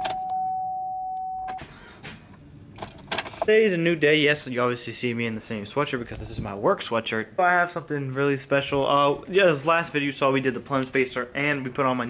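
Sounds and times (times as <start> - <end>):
dashboard warning chime: 0.0 - 1.6.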